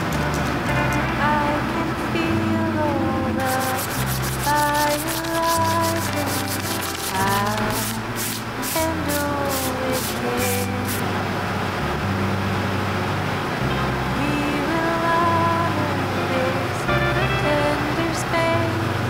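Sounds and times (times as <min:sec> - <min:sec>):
background song with singing: 0:01.0 - 0:11.1, 0:14.2 - 0:19.0
pen scratching on paper: 0:03.4 - 0:10.7.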